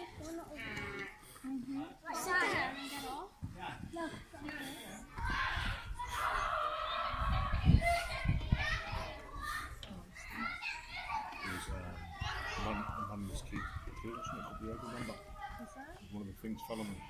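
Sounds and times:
children calling and chattering: 0.0 - 17.0.

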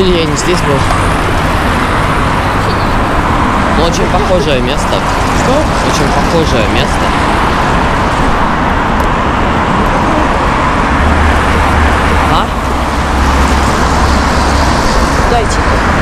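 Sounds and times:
deep traffic rumble: 0.0 - 16.0
passing cars: 0.0 - 16.0.

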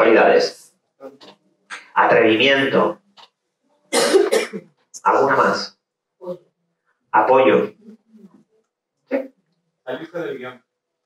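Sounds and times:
person coughing: 4.0 - 4.6.

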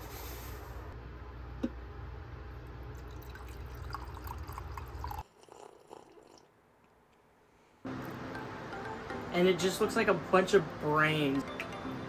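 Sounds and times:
hot water pouring into mug: 2.9 - 6.5.

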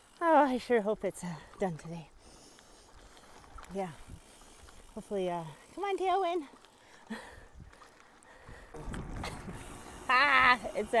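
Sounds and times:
wind buffeting microphone: 3.9 - 4.3, 8.4 - 11.0.

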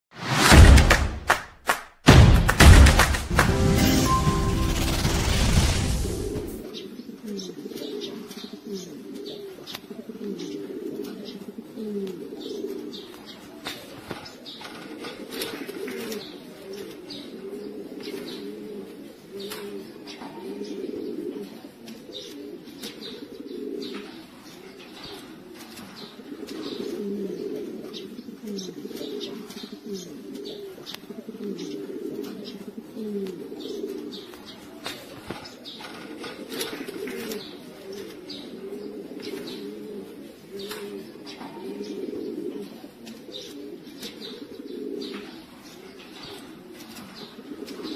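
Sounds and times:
pigeons cooing: 6.6 - 47.9.

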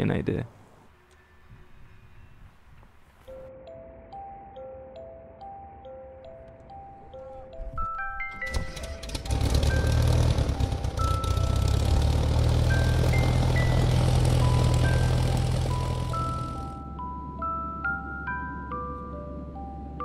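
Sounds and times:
soft music with mallet notes: 3.2 - 20.0
aircraft engine starting and droning: 8.2 - 16.9.

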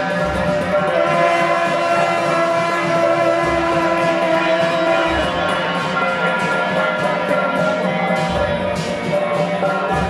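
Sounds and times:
brass horns droning: 0.0 - 7.4.

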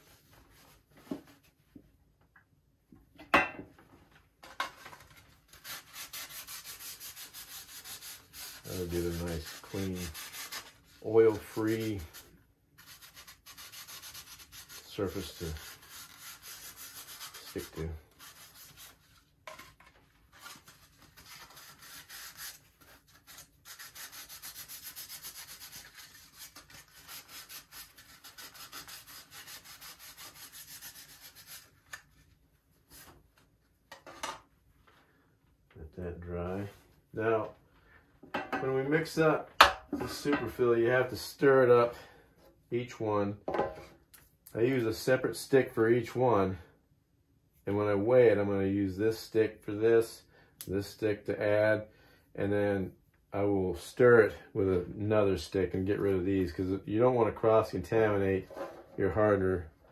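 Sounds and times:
paper towel wiping surface: 5.6 - 12.2, 12.8 - 19.2.

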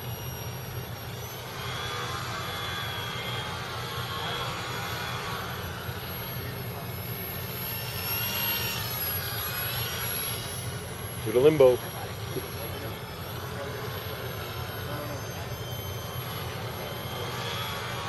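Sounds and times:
model airplane motor whining: 0.0 - 18.0
steady low hum: 0.0 - 18.0.

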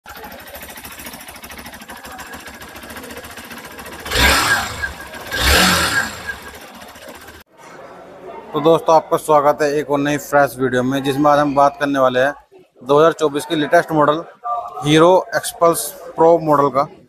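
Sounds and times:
motorcycle engine idling and revving: 0.1 - 7.5.

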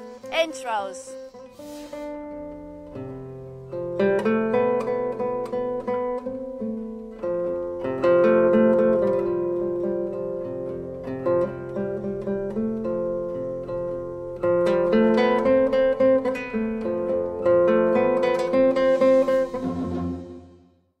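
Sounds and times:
plucked string music: 0.0 - 20.5.

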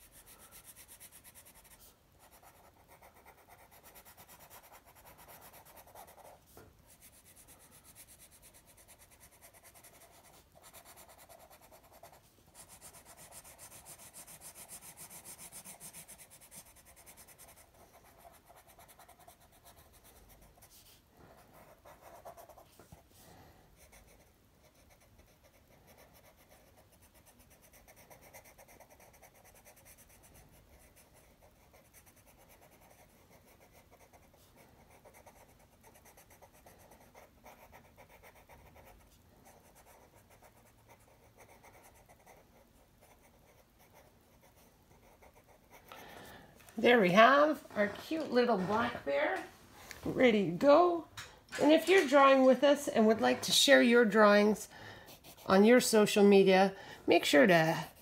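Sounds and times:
pencil scratching on paper: 0.0 - 23.2, 23.8 - 49.1, 51.9 - 58.0.

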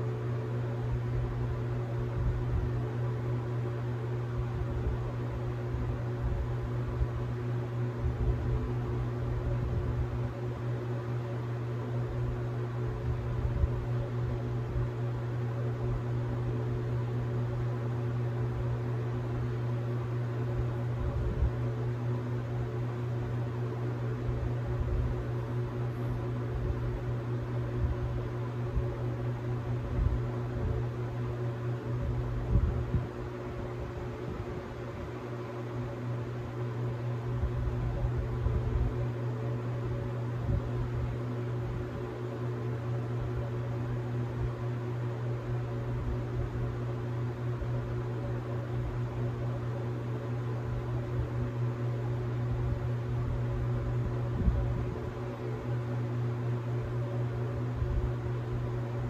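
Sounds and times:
mechanical hum: 0.0 - 59.0.

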